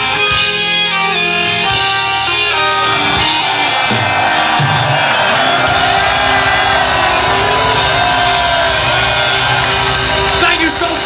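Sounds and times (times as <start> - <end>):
crowd shouting and singing: 0.0 - 11.0
live metal band playing: 0.0 - 11.0.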